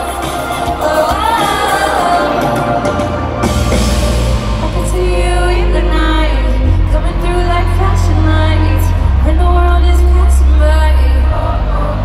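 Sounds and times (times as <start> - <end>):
woman singing into microphone: 0.0 - 3.2, 4.5 - 12.0
band with heavy bass: 0.0 - 12.0.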